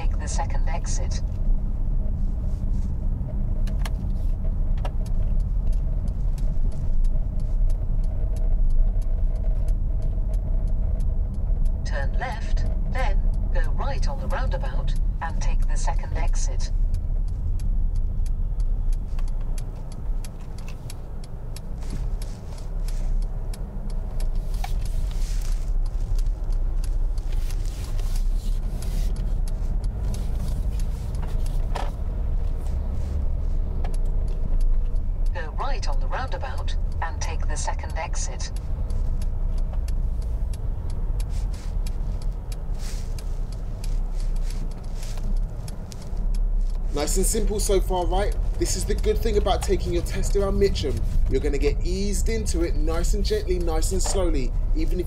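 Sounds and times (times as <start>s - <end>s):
car engine and tyres rumbling: 0.0s - 55.0s
faint clicks and rattles: 1.2s - 11.9s.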